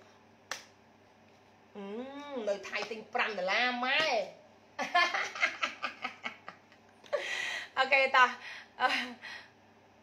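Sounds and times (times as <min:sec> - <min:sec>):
woman humming: 0:01.7 - 0:02.6.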